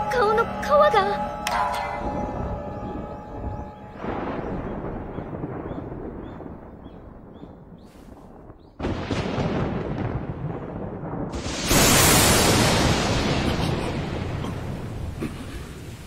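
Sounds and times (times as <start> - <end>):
thunder rumbling: 1.9 - 16.0
thunder rolling: 2.0 - 16.0.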